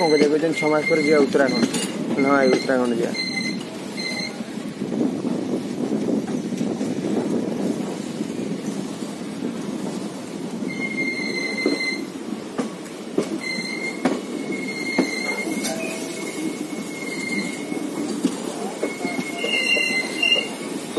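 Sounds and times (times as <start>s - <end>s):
train wheels squealing: 0.0s - 4.4s, 10.6s - 12.1s, 13.3s - 20.7s
wheels clacking over rail joints: 0.0s - 5.0s, 5.7s - 20.9s
steady train rumble: 0.0s - 20.9s.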